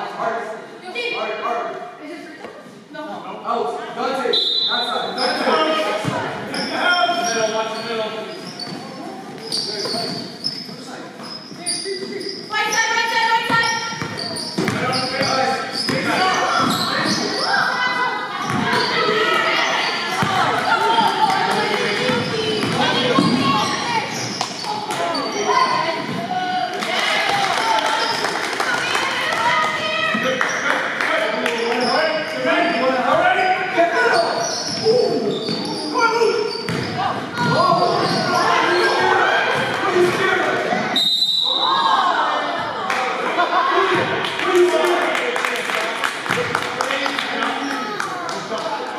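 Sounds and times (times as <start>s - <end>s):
echoing voices: 4.9s - 41.0s
basketball bouncing on hardwood floor: 36.7s - 37.6s.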